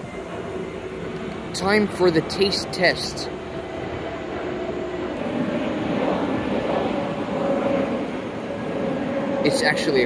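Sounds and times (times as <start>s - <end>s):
engine drone: 0.0s - 10.0s.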